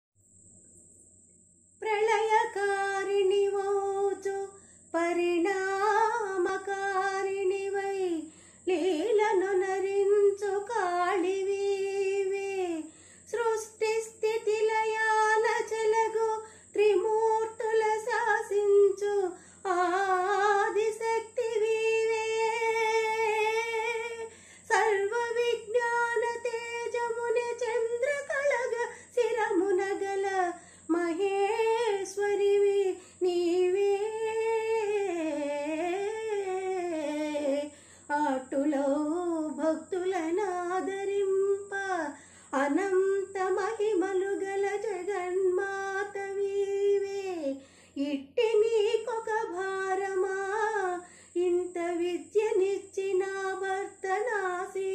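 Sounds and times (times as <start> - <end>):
woman singing solo: 1.8 - 54.9.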